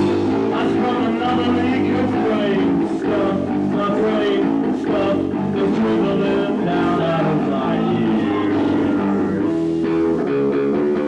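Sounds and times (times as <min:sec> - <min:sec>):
drum kit: 0:00.0 - 0:11.0
guitar: 0:00.0 - 0:11.0.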